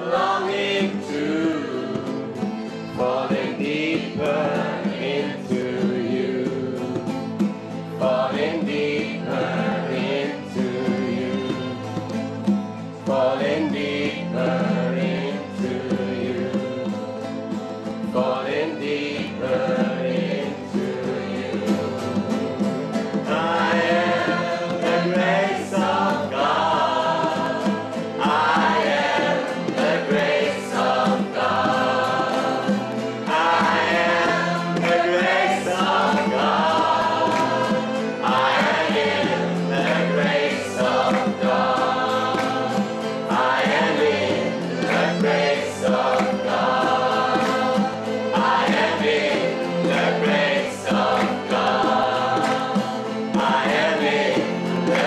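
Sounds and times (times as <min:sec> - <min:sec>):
acoustic guitar: 0:00.0 - 0:55.0
group singing devotional song: 0:00.0 - 0:55.0.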